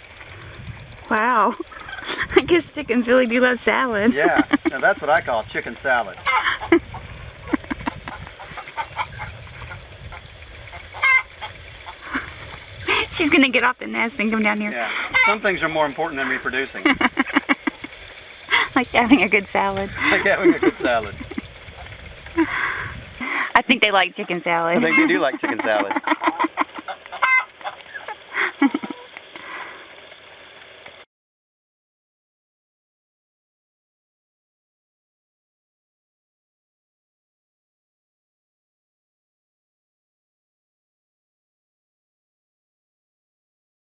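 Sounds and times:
hens clucking: 0:01.2 - 0:05.3, 0:05.9 - 0:29.2.

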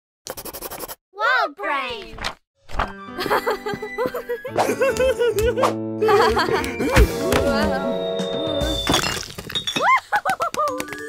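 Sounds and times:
pencil scratching on paper: 0:00.3 - 0:01.0.

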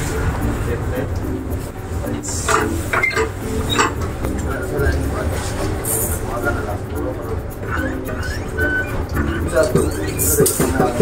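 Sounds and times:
mechanical clatters: 0:02.4 - 0:04.5.

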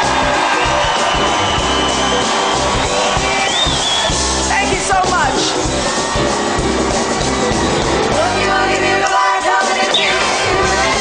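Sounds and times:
live boogie-woogie band music: 0:00.0 - 0:11.0.

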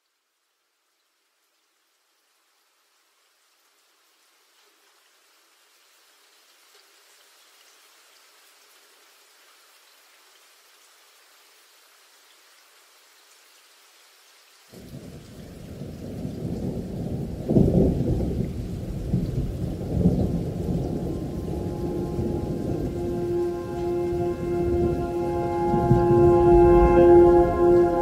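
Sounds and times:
steady rain hiss: 0:00.0 - 0:28.0.

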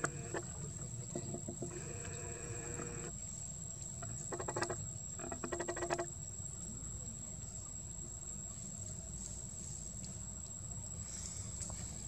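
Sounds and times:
rapid clicking or chattering: 0:04.0 - 0:06.1.

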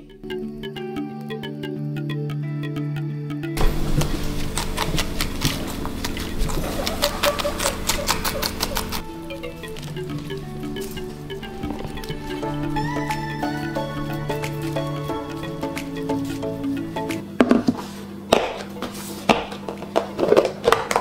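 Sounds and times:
background music: 0:00.0 - 0:21.0
guinea pig chewing lettuce: 0:03.6 - 0:09.0.

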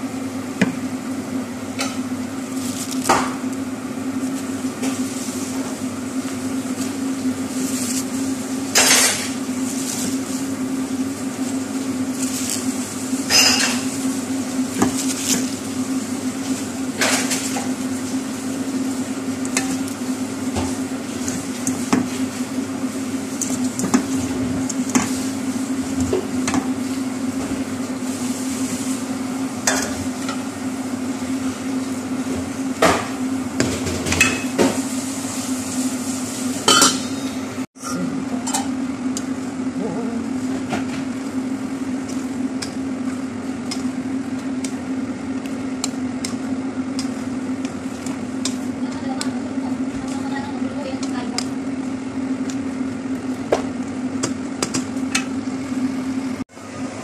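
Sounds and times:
steady low hum: 0:36.6 - 0:56.5
utensil stirring cabbage in pot: 0:41.2 - 0:55.1.

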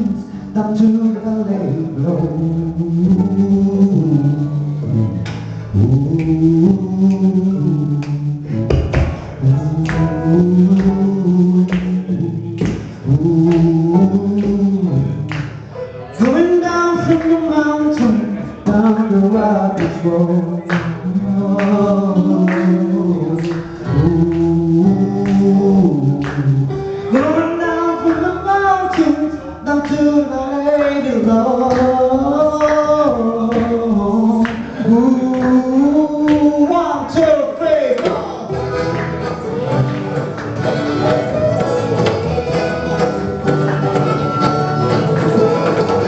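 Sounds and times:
acoustic rock blues band jamming: 0:00.0 - 0:46.0
hand drum beat: 0:08.7 - 0:11.0, 0:40.6 - 0:46.0
banjo: 0:38.5 - 0:46.0.

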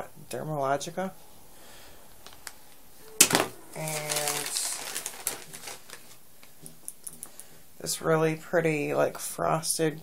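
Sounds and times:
packaging clicks and rustles: 0:03.2 - 0:07.2.

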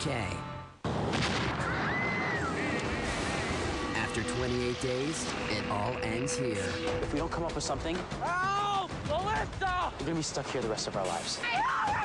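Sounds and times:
loud hit: 0:00.8 - 0:08.2
steady rushing noise: 0:02.3 - 0:08.3
closing music: 0:02.3 - 0:11.2.

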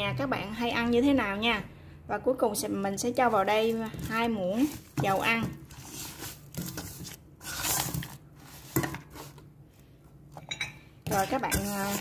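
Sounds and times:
chopsticks mixing bones in pot: 0:03.2 - 0:09.5, 0:11.1 - 0:12.0.

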